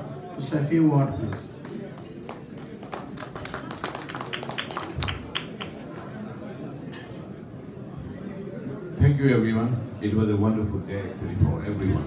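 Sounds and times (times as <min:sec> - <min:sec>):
audience hand claps: 0:01.6 - 0:05.9.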